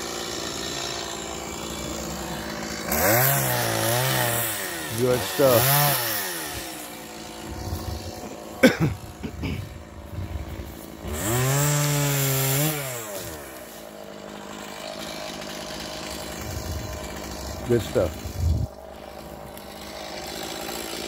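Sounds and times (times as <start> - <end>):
chainsaw idling and revving: 0.0 - 21.0.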